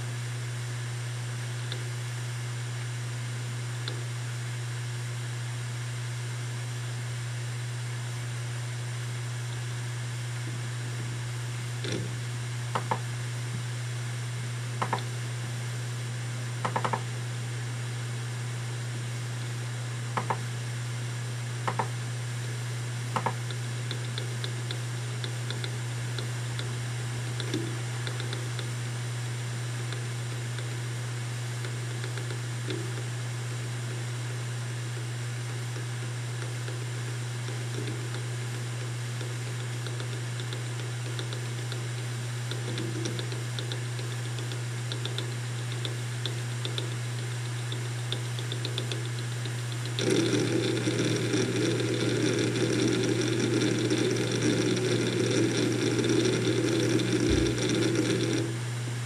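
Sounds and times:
hard drive spinning hum: 0:00.0 - 0:59.0.

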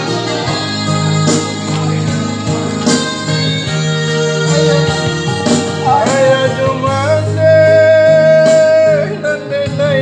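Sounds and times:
electronic keyboard accompaniment: 0:00.0 - 0:10.0
man singing: 0:05.6 - 0:10.0.

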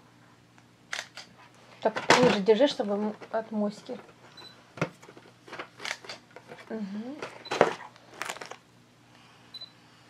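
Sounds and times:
packaging rustle: 0:07.8 - 0:08.6.

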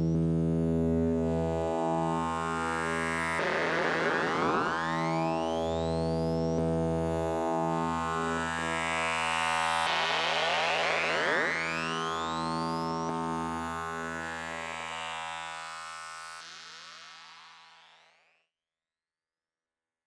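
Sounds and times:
synthesizer low drone: 0:00.0 - 0:16.4
rising synthesizer pitch sweeps: 0:01.6 - 0:18.3.

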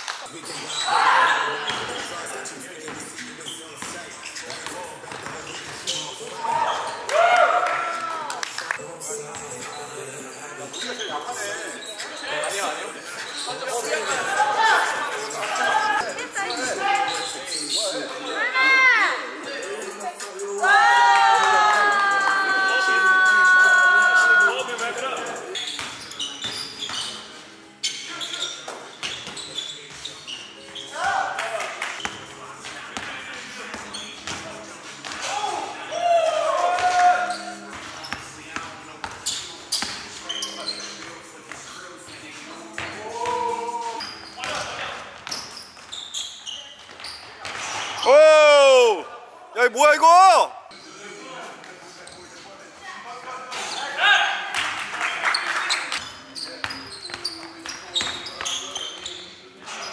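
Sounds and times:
sneaker squeaks: 0:00.2 - 0:07.1, 0:09.3 - 0:14.2, 0:14.8 - 0:18.2, 0:25.4 - 0:31.4, 0:32.0 - 0:35.5, 0:36.8 - 0:48.1, 0:51.9 - 0:52.5, 0:55.3 - 0:59.9.

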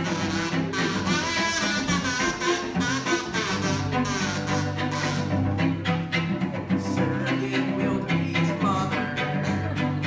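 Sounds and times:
cello bowed low notes: 0:00.0 - 0:10.0.

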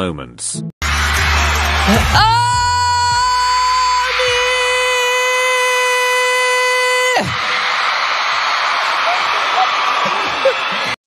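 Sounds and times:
person yelling high-pitched: 0:02.1 - 0:07.3.

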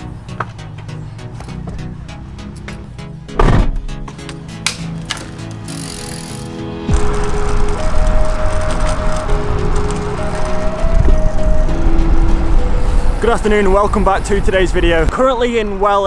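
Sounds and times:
synth background music: 0:00.0 - 0:15.1
wind and road noise from bicycle: 0:05.0 - 0:16.0.

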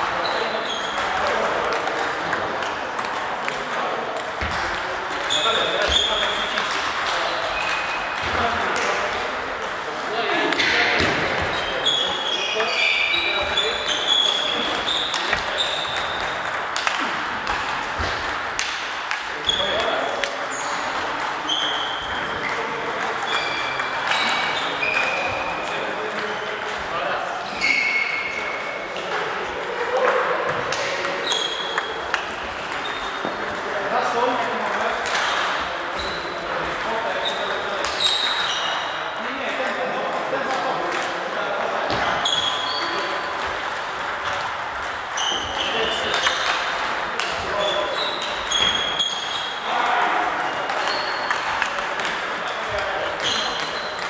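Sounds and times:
murmur of voices: 0:00.0 - 0:54.0
table tennis balls clicking: 0:00.7 - 0:26.8, 0:28.6 - 0:38.9, 0:39.7 - 0:54.0.

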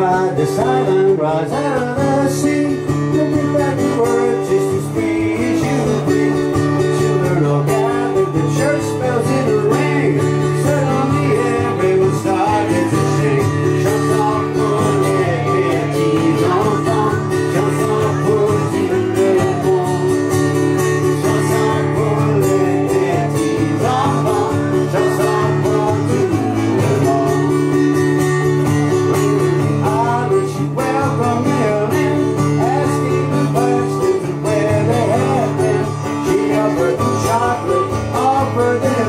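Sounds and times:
band with strummed acoustic guitar: 0:00.0 - 0:39.0.

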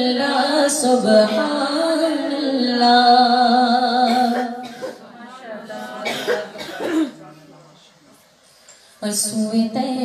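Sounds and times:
person coughing: 0:04.1 - 0:05.0, 0:06.0 - 0:07.3.

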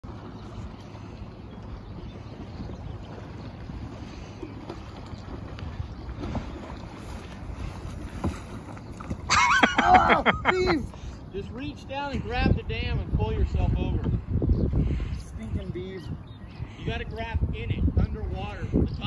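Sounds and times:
wind buffeting microphone: 0:00.0 - 0:19.0
man laughing: 0:09.3 - 0:11.0.

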